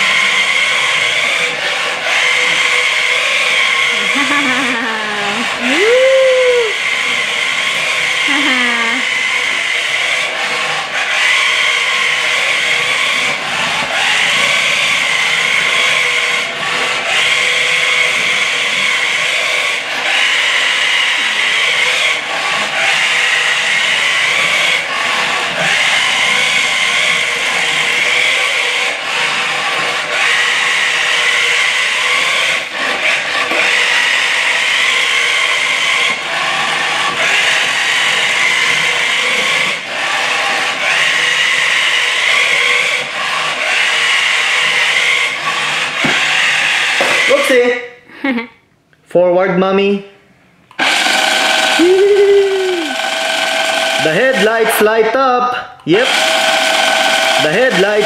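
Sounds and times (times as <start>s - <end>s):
toy car motor whirring: 0.0s - 47.7s, 50.7s - 55.2s, 55.9s - 58.0s
wheels rubbing on wood: 0.0s - 47.8s, 50.7s - 55.2s, 55.9s - 58.0s.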